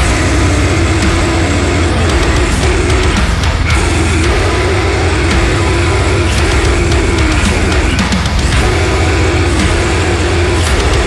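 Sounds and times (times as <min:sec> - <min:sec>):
distorted low guitar riff: 0:00.0 - 0:11.0
drum hits: 0:00.0 - 0:11.0.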